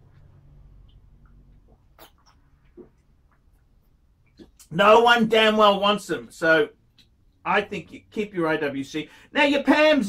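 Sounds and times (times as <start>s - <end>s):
low room hum: 0.0s - 10.0s
swallowing gulps: 0.8s - 4.7s.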